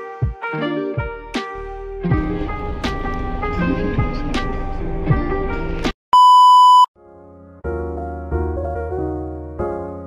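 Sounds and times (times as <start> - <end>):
soft keyboard music: 0.0 - 6.0, 7.0 - 10.0
high test-tone beep: 6.2 - 6.9.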